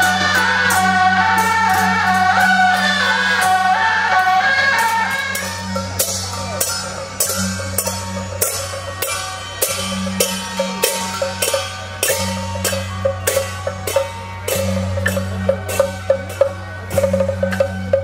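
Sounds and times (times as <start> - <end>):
drum and cymbal strikes: 0.0 - 18.0.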